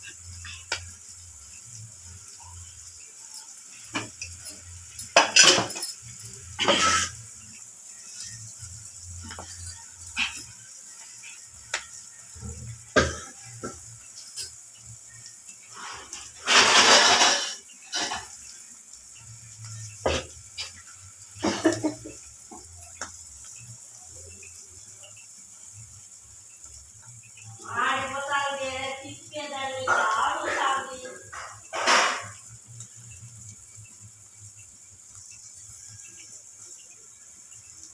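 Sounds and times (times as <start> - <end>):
cooking clicks and pops: 0.0 - 37.9
burst of hiss: 6.5 - 8.5, 15.7 - 18.4.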